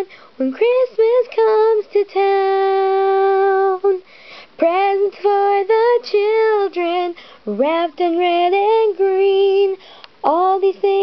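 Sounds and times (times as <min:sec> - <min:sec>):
soft breath: 0:00.0 - 0:00.4, 0:04.0 - 0:04.6, 0:07.1 - 0:07.5, 0:09.7 - 0:10.2
girl singing unaccompanied: 0:00.0 - 0:11.0.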